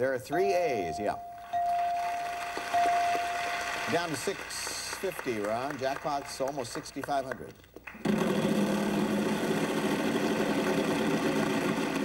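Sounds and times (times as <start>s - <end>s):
electronic chime tone: 0.3s - 4.0s.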